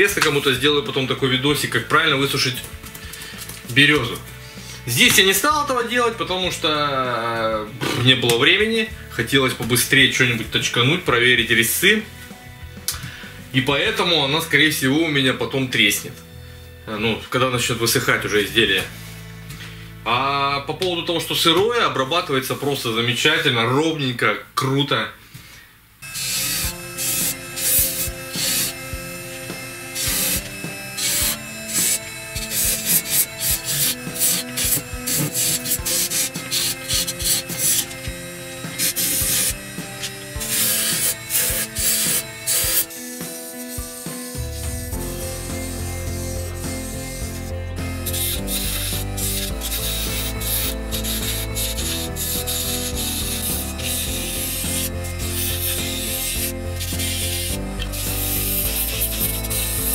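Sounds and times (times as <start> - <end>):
chisel scraping spinning wood: 26.0 - 59.9
lathe humming: 26.0 - 59.9.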